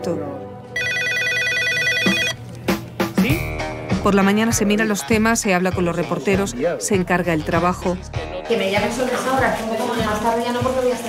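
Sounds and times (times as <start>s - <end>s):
electronic telephone ringing: 0.8s - 2.4s.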